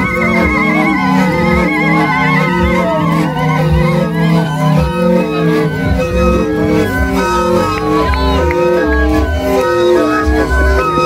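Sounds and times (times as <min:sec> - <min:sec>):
end-blown pipes playing together: 0:00.0 - 0:11.0
wavering high note: 0:00.0 - 0:11.0.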